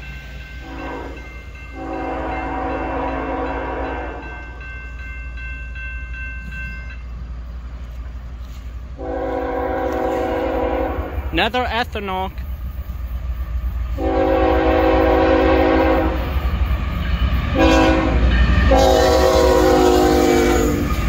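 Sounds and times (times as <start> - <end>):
locomotive air horn blasts: 0.6 - 1.2, 1.8 - 4.4, 9.0 - 11.3, 14.0 - 16.4, 17.5 - 20.9.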